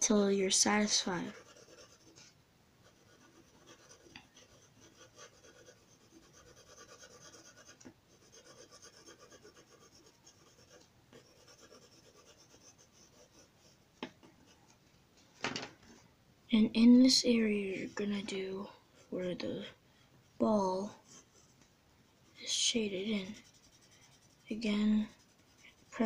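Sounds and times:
pencil scratching on paper: 0.8s - 13.8s, 17.6s - 26.0s.

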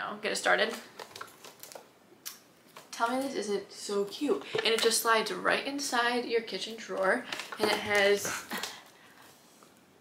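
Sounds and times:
plastic wrap crinkling: 0.6s - 3.0s, 6.9s - 9.0s.

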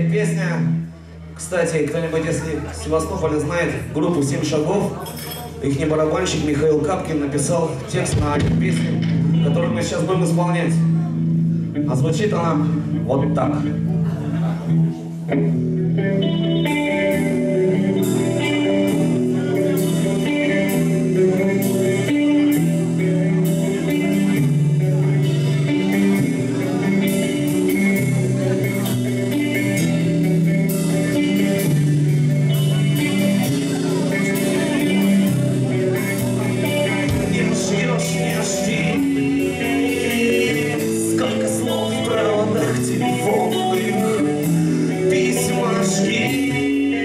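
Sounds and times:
bass guitar: 0.0s - 47.0s
electric guitar melody: 0.0s - 47.0s
rock band playing live: 0.0s - 47.0s
drums with cymbal hits: 8.1s - 9.0s.

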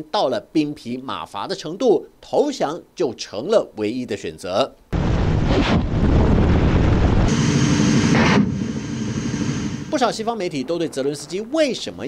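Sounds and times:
wind noise on microphone: 5.0s - 9.5s
helicopter rotors and engines: 6.8s - 11.4s.

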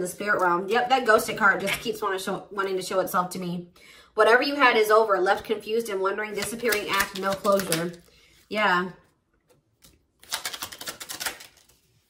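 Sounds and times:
deck of cards shuffling: 6.3s - 8.4s, 9.8s - 12.0s.

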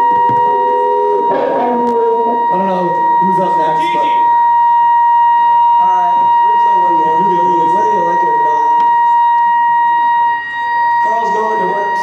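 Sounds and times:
high-pitched whine: 0.0s - 12.0s
person speaking: 0.6s - 4.2s.

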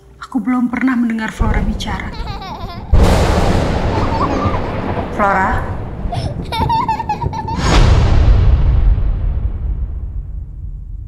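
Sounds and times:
long rumbling tail: 1.5s - 11.0s
cinematic impact boom: 2.8s - 11.0s.

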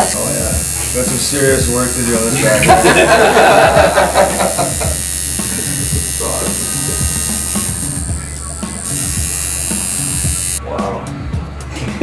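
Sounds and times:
tattoo machine buzzing: 0.0s - 10.6s.

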